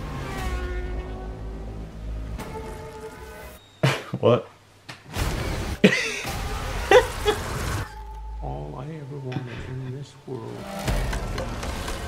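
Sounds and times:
sustained soundtrack tones: 0.0s - 3.7s, 5.5s - 12.0s.

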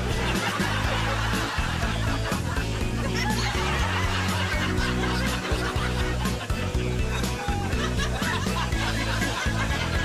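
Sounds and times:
canned audience laughter: 0.0s - 10.0s
upbeat background music: 0.0s - 10.0s.

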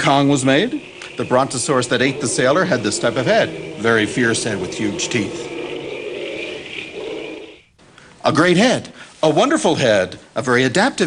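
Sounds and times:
monster growl: 0.0s - 7.7s.

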